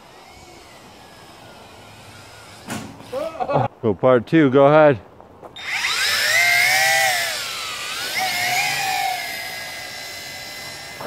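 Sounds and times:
toy drone propellers whirring: 0.0s - 3.4s, 5.6s - 11.0s.

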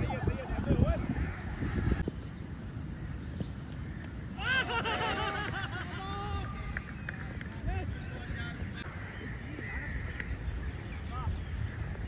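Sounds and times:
cricket players shouting: 4.3s - 10.2s.

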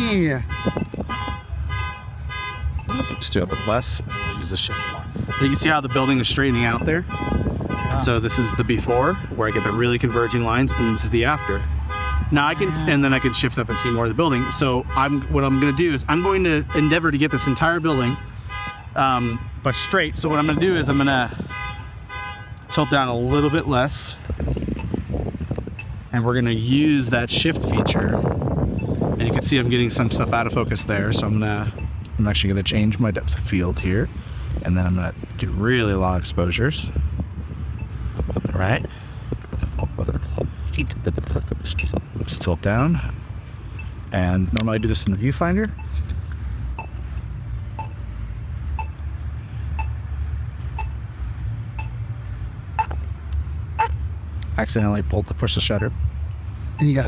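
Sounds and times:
wind buffeting microphone: 0.0s - 1.6s, 4.0s - 9.5s, 23.9s - 32.2s, 33.8s - 42.6s
steady low rumble: 23.3s - 57.0s
short electronic beep: 46.8s - 47.0s, 47.8s - 48.0s, 48.7s - 49.0s, 50.8s - 51.0s, 51.8s - 52.0s, 52.8s - 53.0s.

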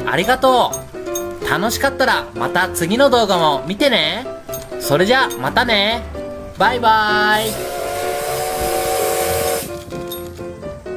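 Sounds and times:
steam locomotive whistle: 7.2s - 9.8s
hiss of escaping steam: 7.3s - 9.8s.

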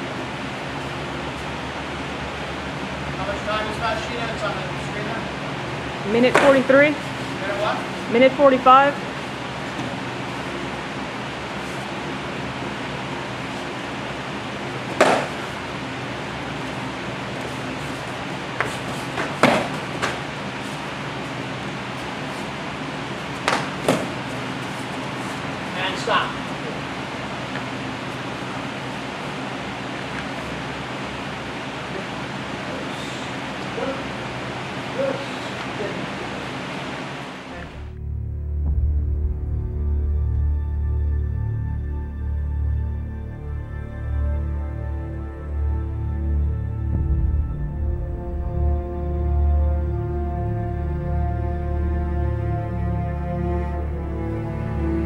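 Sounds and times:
room noise hiss: 0.0s - 38.0s
steady background hum: 0.0s - 55.0s
padded sticks striking: 6.2s - 6.7s, 14.9s - 15.6s, 23.4s - 24.3s
background music: 37.9s - 55.0s.

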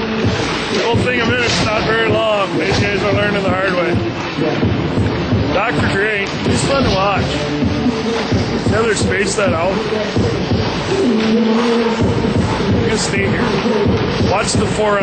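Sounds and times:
background music: 0.0s - 15.0s
voices: 0.0s - 15.0s.

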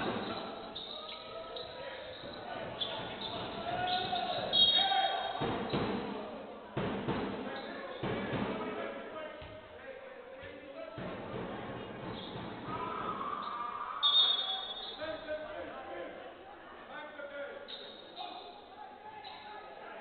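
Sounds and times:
players calling out: 0.0s - 5.4s
high squeak: 0.2s - 5.8s.

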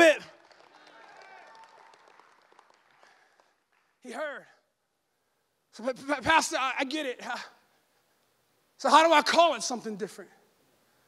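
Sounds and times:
people clapping: 0.0s - 4.0s.

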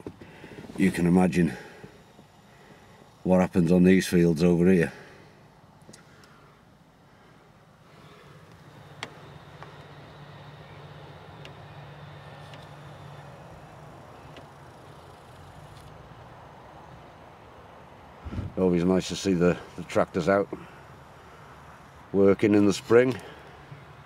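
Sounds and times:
engine humming: 0.0s - 24.0s.

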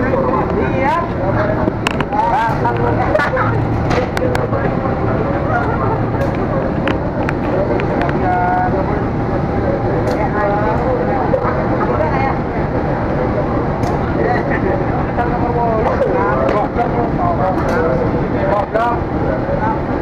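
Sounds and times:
diesel locomotive rumbling: 0.0s - 20.0s
people's voices: 0.0s - 20.0s.

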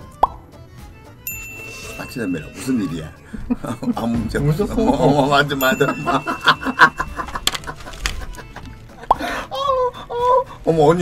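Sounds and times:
rising bloop pop: 0.2s - 0.4s
high bright ding: 1.3s - 3.3s, 5.6s - 7.2s.

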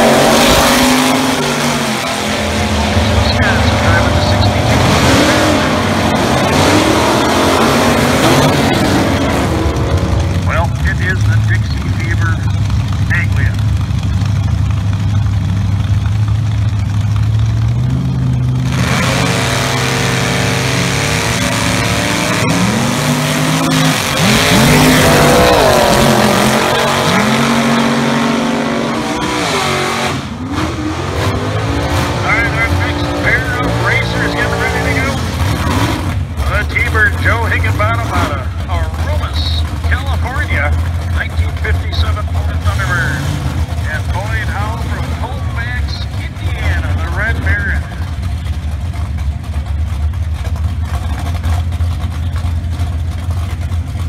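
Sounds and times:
drag car engines revving: 0.0s - 54.0s.

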